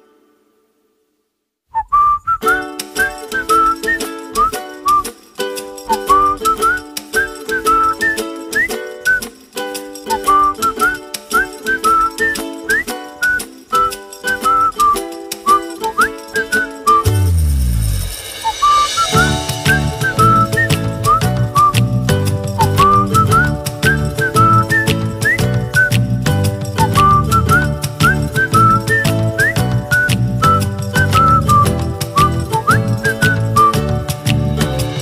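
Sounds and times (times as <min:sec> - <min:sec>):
whistled tune with sliding notes: 0:01.7 - 0:35.0
light bouncy accompaniment: 0:02.3 - 0:35.0.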